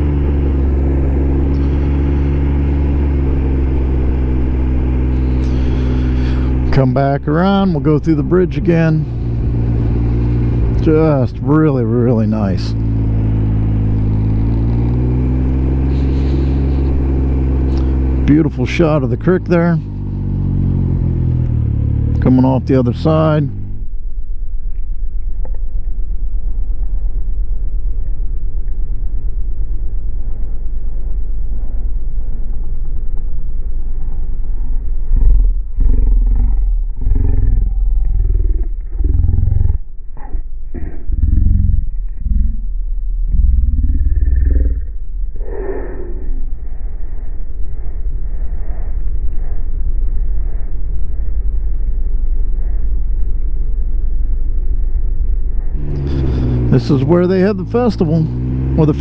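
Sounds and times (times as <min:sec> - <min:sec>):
motorcycle engine rumbling: 0:00.0 - 0:59.0.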